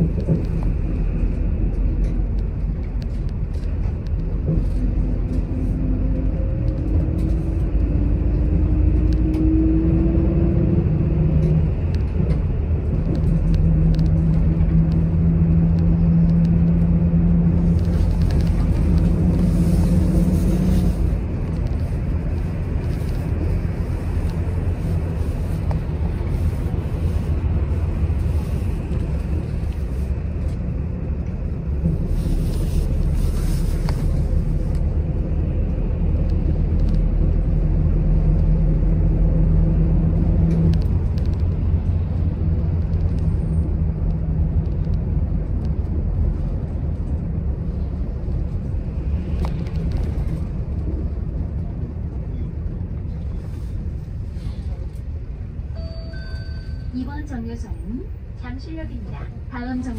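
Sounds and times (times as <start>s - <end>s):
bus engine and road rumble: 0.0s - 59.9s.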